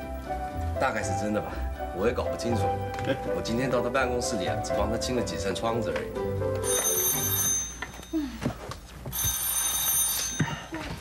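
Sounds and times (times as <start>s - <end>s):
telephone ringing: 5.7s - 8.1s, 9.1s - 11.0s.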